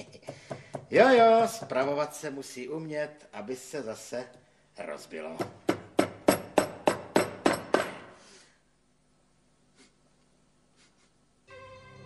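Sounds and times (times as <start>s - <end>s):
hammer tapping tacks: 0.0s - 1.8s, 5.3s - 8.0s.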